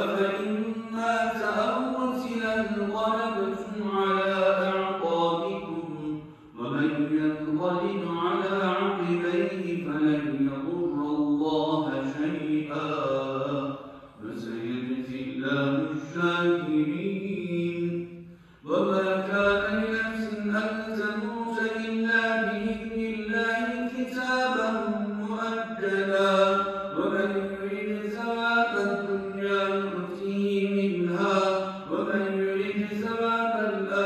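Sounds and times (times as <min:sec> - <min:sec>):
man chanting recitation: 0:00.0 - 0:34.0.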